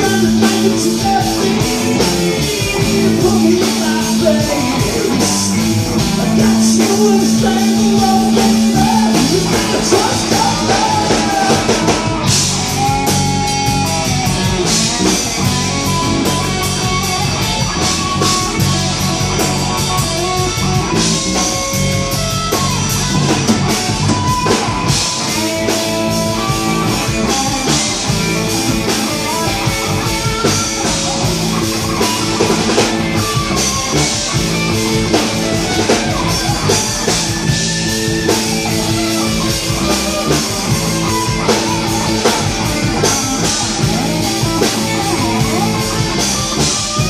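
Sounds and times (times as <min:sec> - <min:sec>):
bass guitar: 0:00.0 - 0:47.0
drum kit: 0:00.0 - 0:47.0
electric guitar lead: 0:00.0 - 0:47.0.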